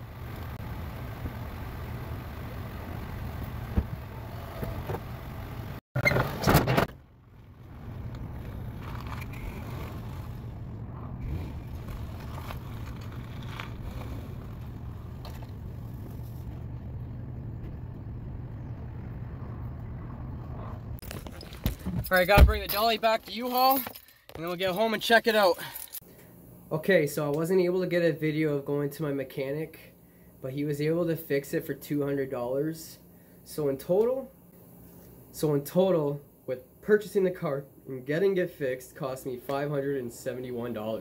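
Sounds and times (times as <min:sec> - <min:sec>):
car engine humming: 0:00.0 - 0:21.9.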